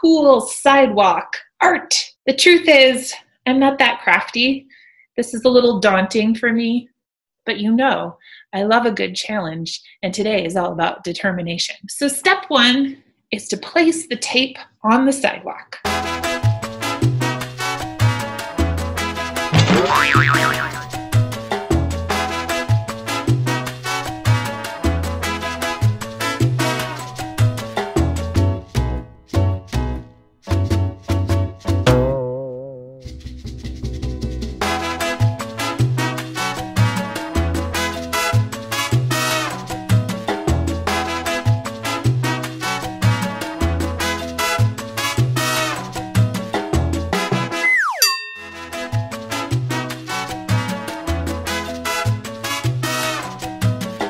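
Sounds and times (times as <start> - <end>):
cartoon boing effect: 19.6 - 20.9, 31.9 - 33.0, 47.5 - 48.8
upbeat salsa music: 19.6 - 20.9, 47.3 - 50.0
descending slide whistle: 47.5 - 48.1
bell-like ding: 47.9 - 49.1.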